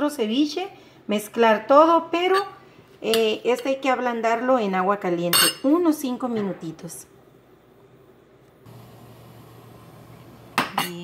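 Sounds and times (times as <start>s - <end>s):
faint background hum and hiss: 0.0s - 11.0s.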